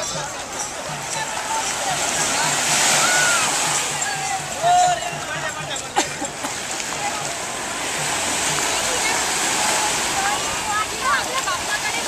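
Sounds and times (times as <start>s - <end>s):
small waves washing on beach: 0.0s - 12.0s.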